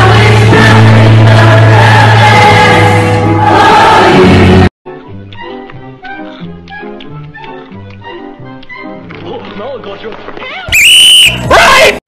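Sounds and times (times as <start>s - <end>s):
cartoon music: 5.0s - 9.0s, 10.7s - 11.7s
loud distorted high-pitched tone: 10.8s - 11.4s.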